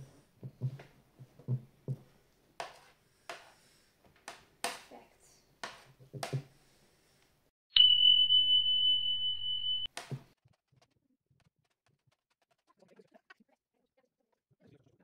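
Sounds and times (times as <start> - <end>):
high-pitched electronic beep: 7.8 - 9.9.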